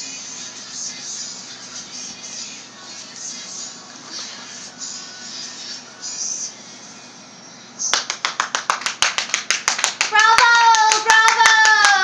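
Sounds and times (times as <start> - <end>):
rapid hand clapping: 7.9 - 12.0
high voice cheering: 10.1 - 12.0.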